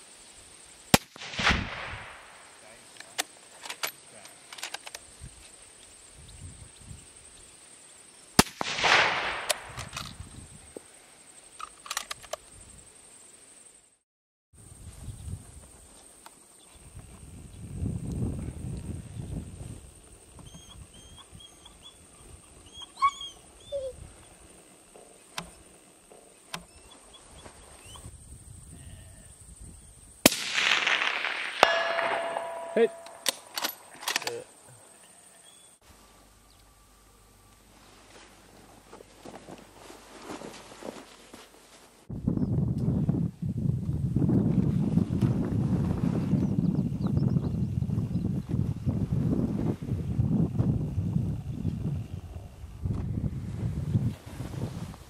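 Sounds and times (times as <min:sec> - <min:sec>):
rifle shots: 0:01.0 - 0:02.6, 0:08.4 - 0:10.1, 0:30.3 - 0:34.2.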